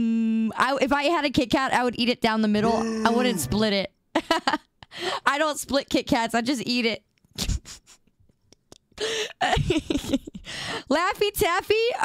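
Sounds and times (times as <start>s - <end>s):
woman laughing breathily: 8.7s - 10.9s.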